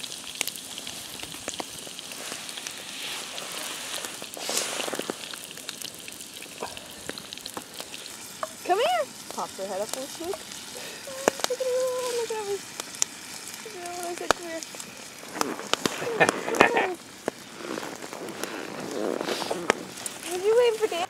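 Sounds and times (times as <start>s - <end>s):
food frying over campfire: 0.0s - 21.0s.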